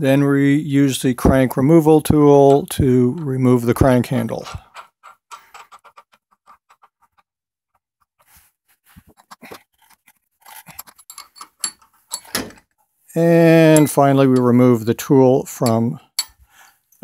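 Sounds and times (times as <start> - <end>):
faint metal clicks and clinks: 10.6 - 12.4.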